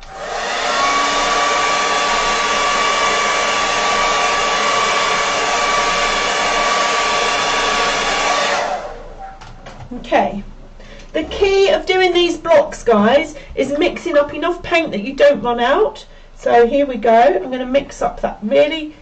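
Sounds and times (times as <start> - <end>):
hair dryer running: 0.0 - 9.2.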